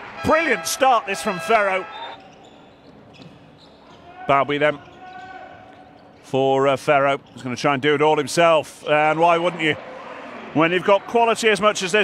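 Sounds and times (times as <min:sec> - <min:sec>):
arena ambience: 0:00.0 - 0:12.0.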